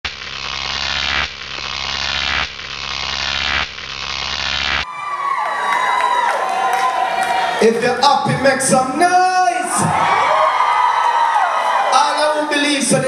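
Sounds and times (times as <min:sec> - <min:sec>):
noisy intro sound effect: 0:00.0 - 0:04.8
concert hall ambience: 0:04.8 - 0:13.0.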